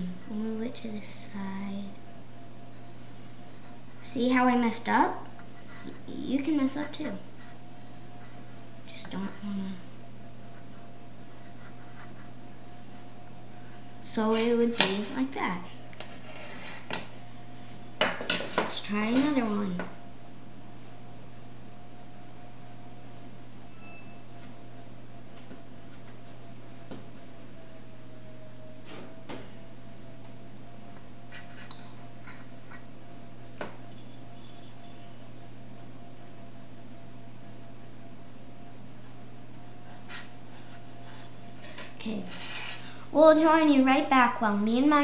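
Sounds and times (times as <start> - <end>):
low background hum: 0.0 - 45.0.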